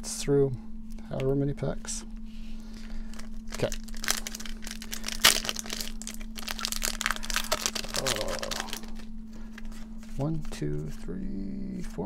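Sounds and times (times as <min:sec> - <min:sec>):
foil wrapper crinkling: 0:02.7 - 0:10.5
foil wrapper tearing: 0:02.8 - 0:09.1.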